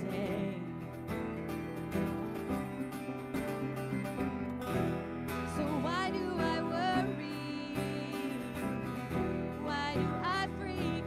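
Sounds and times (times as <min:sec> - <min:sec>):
piano: 0:00.0 - 0:11.0
strummed acoustic guitar: 0:00.0 - 0:11.0.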